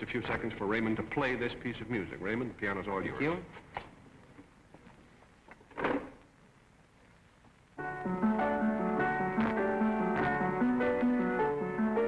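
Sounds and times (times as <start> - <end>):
old recording hiss: 0.0 - 12.0.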